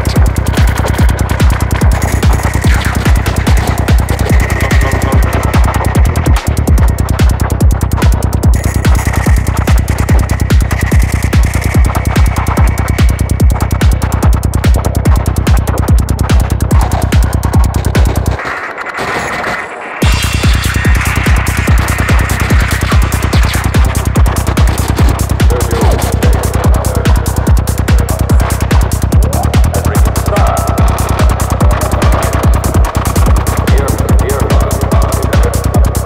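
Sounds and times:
kick drum: 0:00.0 - 0:18.4, 0:20.0 - 0:36.0
bass: 0:00.0 - 0:36.0
held synth line: 0:19.2 - 0:36.0
hi-hats: 0:20.0 - 0:36.0.

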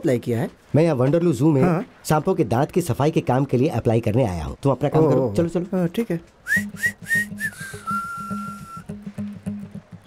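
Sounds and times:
whistled tune: 0:06.4 - 0:09.7.

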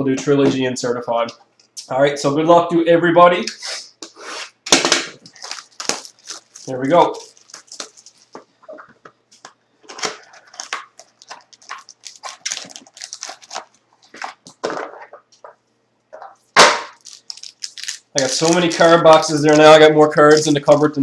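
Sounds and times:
plastic wrap crinkling: 0:05.2 - 0:15.5, 0:16.4 - 0:21.0.

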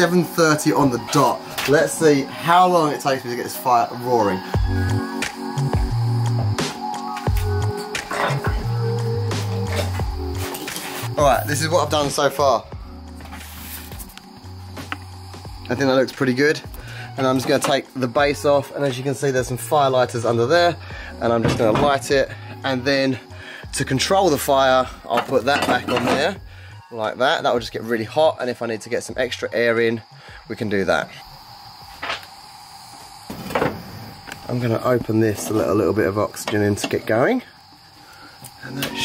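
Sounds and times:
background music with low bass: 0:00.0 - 0:29.7.

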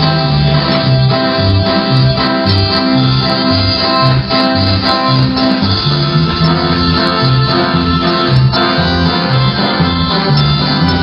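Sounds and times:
electric bass guitar line: 0:00.0 - 0:11.0
sustained instruments: 0:00.0 - 0:11.0.

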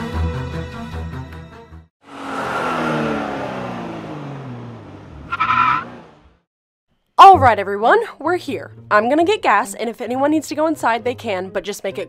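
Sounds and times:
engine winding down: 0:02.0 - 0:06.4
high squeal of brakes: 0:05.3 - 0:05.9.

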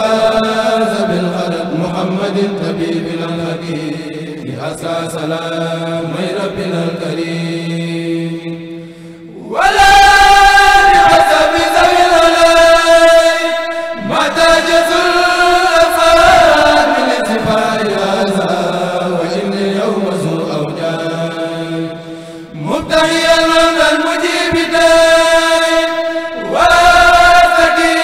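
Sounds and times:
male voices chanting in unison: 0:00.0 - 0:28.0.

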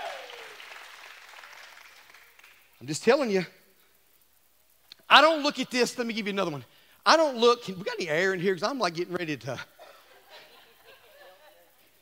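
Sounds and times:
congregation applauding: 0:00.0 - 0:02.8.

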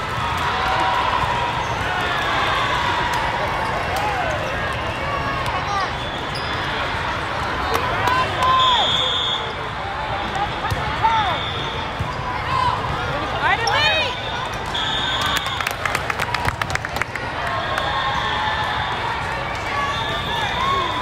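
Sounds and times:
many voices: 0:00.0 - 0:21.0
referee's whistle: 0:08.5 - 0:09.6, 0:11.1 - 0:11.9, 0:13.6 - 0:15.7, 0:19.8 - 0:21.0.

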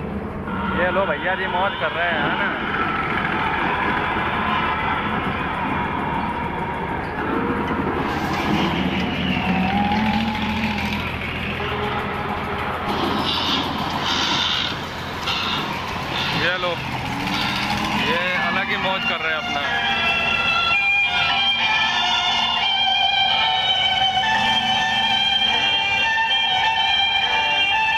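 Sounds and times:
crowd voices: 0:00.0 - 0:26.7
mechanical hum of rides: 0:00.0 - 0:27.9.

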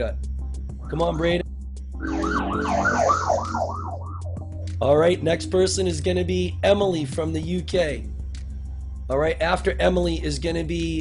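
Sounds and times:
siren warbling: 0:02.0 - 0:04.6.

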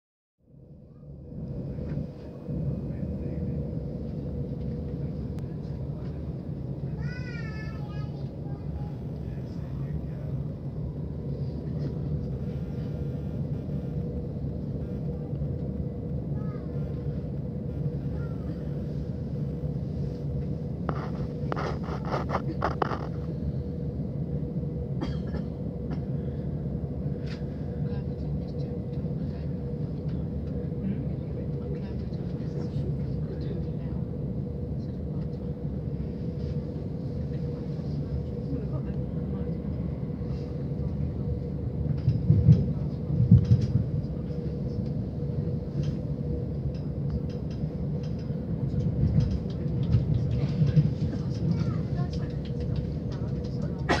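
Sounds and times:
train wheels rumbling on track: 0:01.2 - 0:54.0.

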